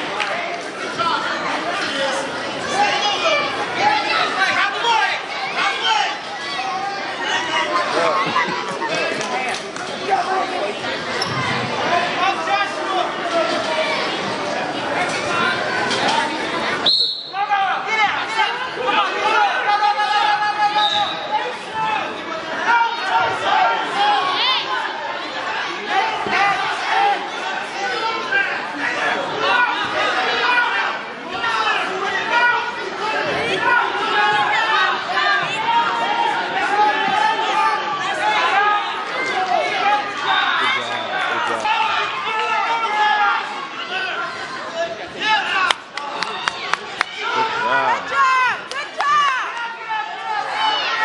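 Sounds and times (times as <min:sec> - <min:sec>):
crowd shouting: 0:00.0 - 0:51.0
spectators and coaches calling out: 0:00.0 - 0:51.0.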